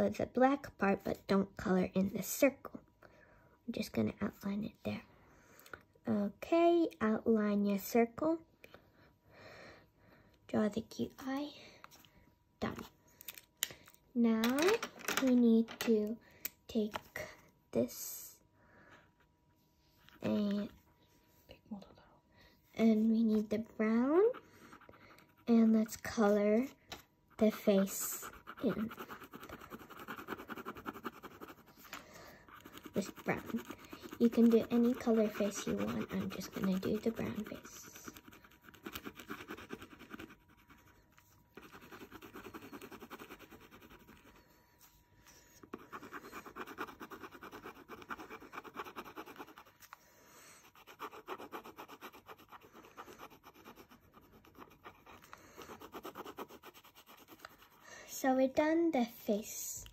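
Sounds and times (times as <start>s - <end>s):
pen scribbling on paper: 27.4s - 31.9s, 32.5s - 40.9s, 41.6s - 44.4s, 45.6s - 49.9s, 50.6s - 57.8s.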